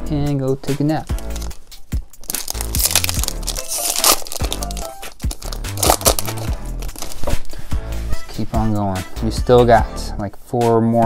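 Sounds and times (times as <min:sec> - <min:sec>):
background music with bass line: 0:00.0 - 0:11.0
foil wrapper crinkling and tearing: 0:01.1 - 0:07.5.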